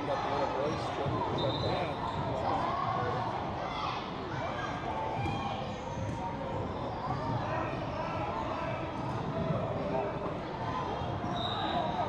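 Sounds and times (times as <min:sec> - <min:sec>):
voices of players and spectators: 0:00.0 - 0:12.0.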